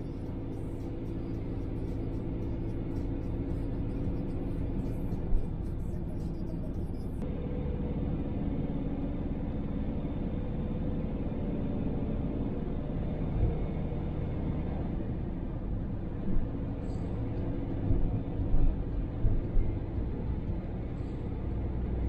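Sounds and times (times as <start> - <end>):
engine and tyre rumble: 0.0 - 22.0.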